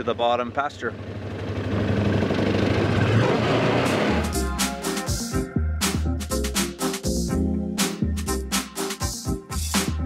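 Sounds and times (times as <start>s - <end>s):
utility vehicle engine running: 0.0s - 4.4s
upbeat background music: 3.8s - 10.0s.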